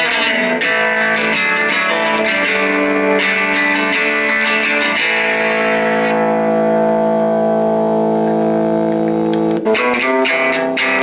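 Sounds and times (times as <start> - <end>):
electric guitar through amp: 0.0 - 11.0.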